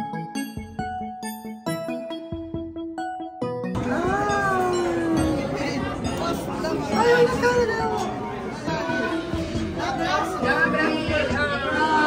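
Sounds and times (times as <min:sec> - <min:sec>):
restaurant chatter: 0:03.8 - 0:12.0.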